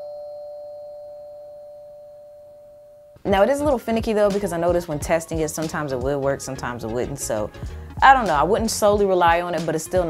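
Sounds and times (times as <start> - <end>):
two-note doorbell chime ringing: 0.0 - 3.2.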